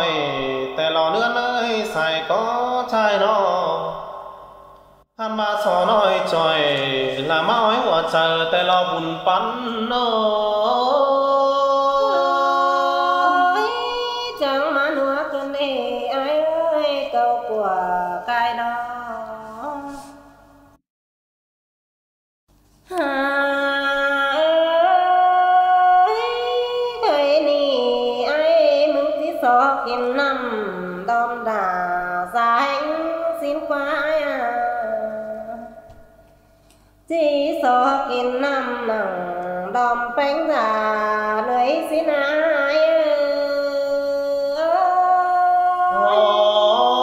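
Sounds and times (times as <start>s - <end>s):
person singing unaccompanied: 5.2s - 20.1s, 22.9s - 35.8s, 37.1s - 47.0s
woman singing held note: 12.0s - 14.4s, 45.7s - 47.0s.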